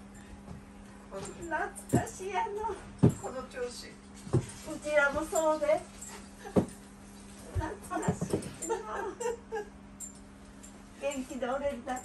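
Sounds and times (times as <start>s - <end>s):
steady low hum: 0.0s - 12.0s
women talking: 1.1s - 6.7s, 7.4s - 9.4s, 11.0s - 12.0s.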